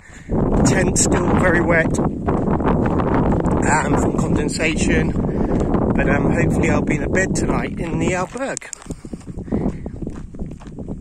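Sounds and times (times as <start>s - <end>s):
footsteps on dirt: 0.0s - 11.0s
wind rumbling on microphone: 0.0s - 11.0s.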